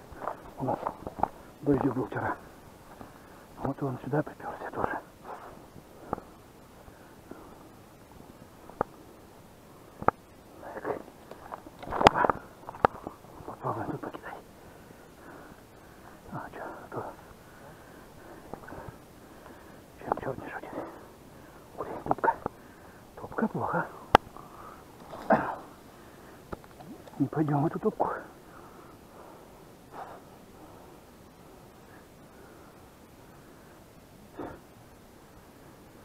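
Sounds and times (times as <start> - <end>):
rustling: 24.2 - 27.2.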